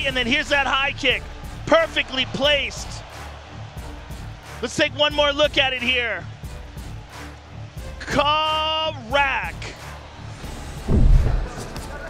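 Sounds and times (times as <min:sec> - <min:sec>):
background music: 0:00.0 - 0:12.0
deep booming hit: 0:10.8 - 0:11.6.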